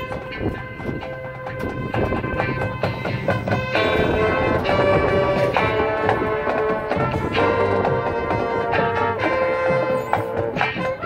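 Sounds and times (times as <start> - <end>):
drum and percussion strikes: 0.0 - 11.0
wind instruments holding a chord: 0.0 - 11.0.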